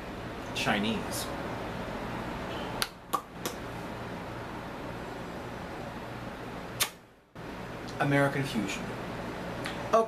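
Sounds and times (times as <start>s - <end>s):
sharp click: 6.8s - 7.0s.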